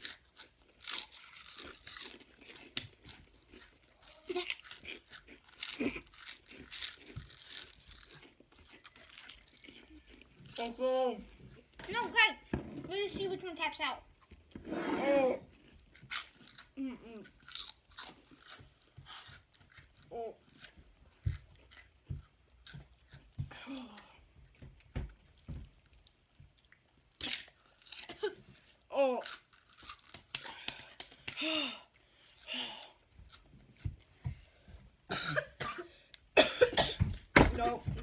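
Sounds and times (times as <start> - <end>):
chewing and crunching snacks: 0.0 - 11.8, 15.4 - 34.4
person coughing: 28.1 - 28.4, 35.1 - 37.1.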